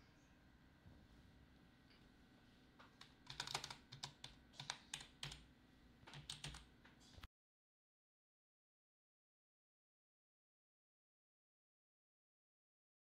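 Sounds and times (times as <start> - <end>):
mechanical keyboard typing clacks: 3.0 - 5.4, 6.1 - 6.7.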